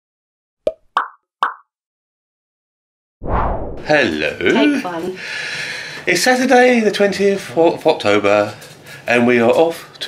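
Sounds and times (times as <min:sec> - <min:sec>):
cartoon pop sound effects: 0:00.6 - 0:01.7.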